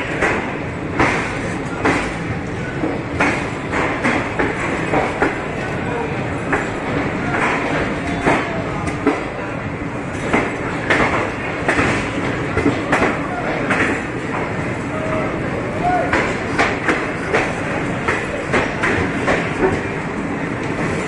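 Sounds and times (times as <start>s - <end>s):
train rumbling in motion: 0.0s - 21.0s.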